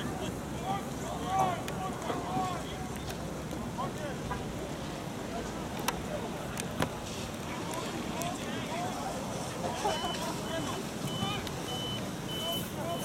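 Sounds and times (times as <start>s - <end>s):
high steady beep: 9.9s - 13.0s.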